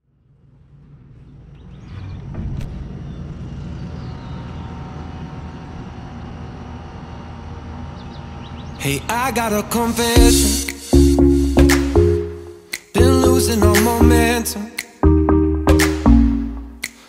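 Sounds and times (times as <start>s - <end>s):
distant road traffic hum: 0.0s - 10.2s.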